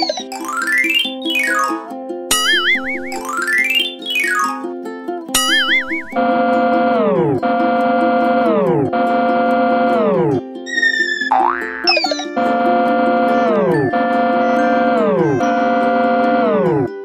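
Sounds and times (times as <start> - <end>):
whistling glides: 0.0 - 0.3, 0.9 - 4.6, 5.4 - 7.9, 10.7 - 16.9
synth tone sliding down: 5.4 - 16.9.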